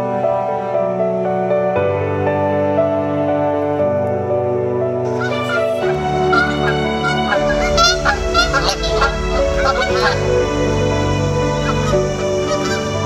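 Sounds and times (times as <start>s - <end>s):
background music: 0.0s - 13.0s
geese honking: 5.1s - 13.0s.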